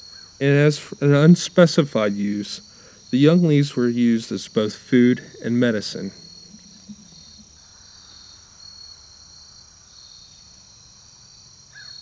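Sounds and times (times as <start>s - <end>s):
crickets chirping: 0.0s - 12.0s
pulsing insect trill: 0.0s - 12.0s
bird call: 5.8s - 7.5s.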